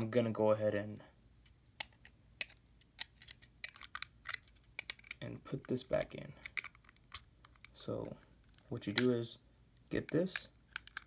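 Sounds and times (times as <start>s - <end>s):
plastic toy parts clicking: 1.8s - 5.2s, 6.0s - 7.8s, 10.0s - 11.0s.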